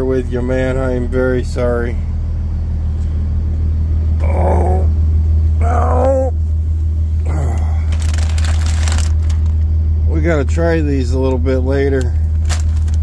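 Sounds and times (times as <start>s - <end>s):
truck engine drone: 0.0s - 13.0s
plastic bag crinkling: 7.8s - 9.6s, 12.1s - 13.0s.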